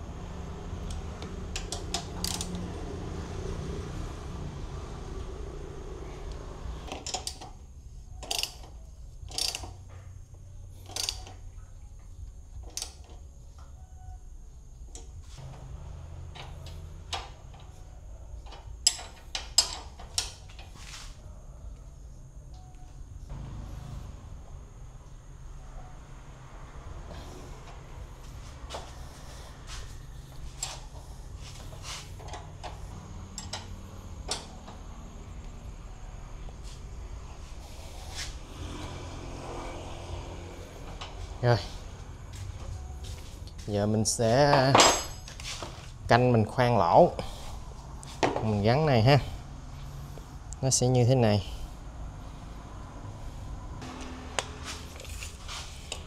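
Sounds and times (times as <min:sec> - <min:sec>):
metallic clicks and clinks of tools: 0:08.2 - 0:08.7.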